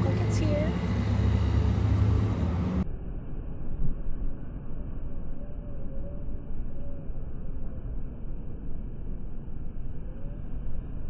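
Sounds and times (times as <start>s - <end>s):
car engine and road noise: 0.0s - 5.0s.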